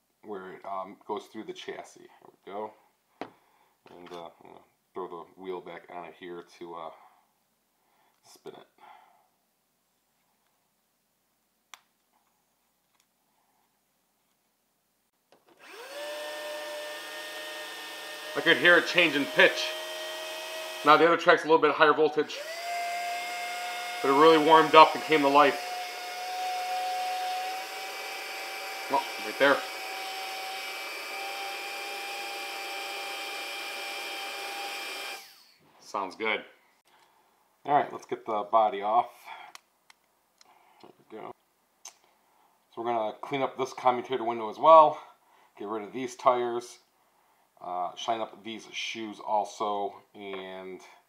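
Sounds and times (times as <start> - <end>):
small electric motor whining: 15.5 - 21.2, 22.0 - 35.6.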